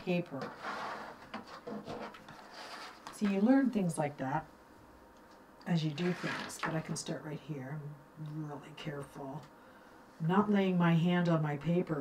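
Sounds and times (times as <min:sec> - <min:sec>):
paper rubbing on tabletop: 0:00.4 - 0:03.1, 0:06.0 - 0:06.6.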